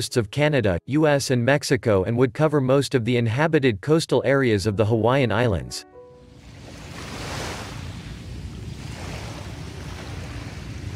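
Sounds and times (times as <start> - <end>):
heavy ocean surf breaking: 6.4 - 10.9.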